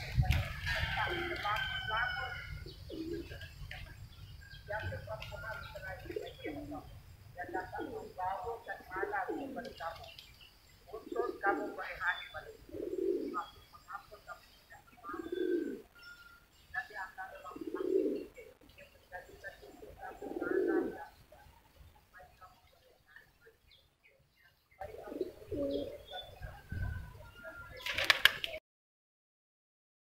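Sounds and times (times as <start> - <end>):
doves cooing: 0.0 - 21.6, 24.8 - 28.6
small birds chirping: 0.0 - 28.6.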